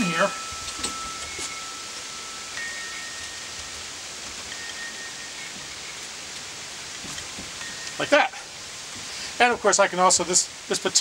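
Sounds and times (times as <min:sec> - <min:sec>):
metal wind chime ringing: 0:00.0 - 0:08.4
steady background hiss: 0:00.0 - 0:11.0.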